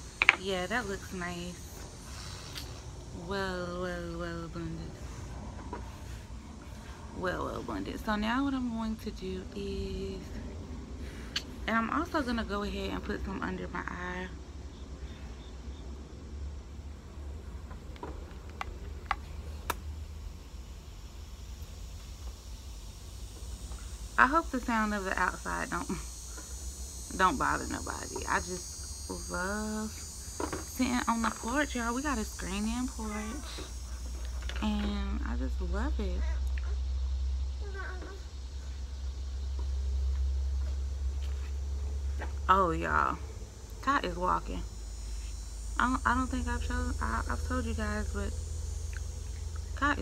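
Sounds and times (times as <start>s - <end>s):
steady low rumble: 0.0s - 37.6s, 38.3s - 50.0s.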